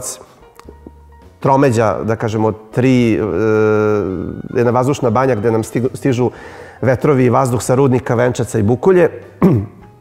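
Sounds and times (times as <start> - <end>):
man speaking: 1.4 - 9.1.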